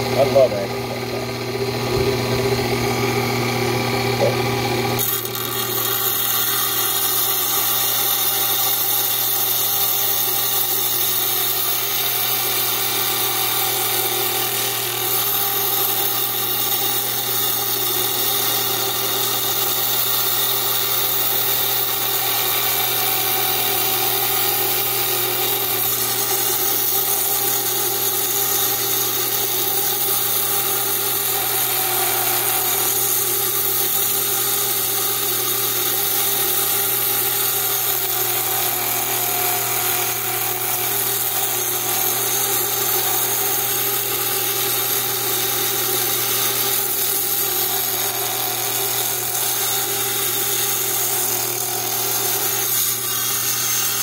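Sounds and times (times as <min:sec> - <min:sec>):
saw blade cutting whine: 0:00.0 - 0:54.0
wet saw motor hum: 0:00.0 - 0:54.0.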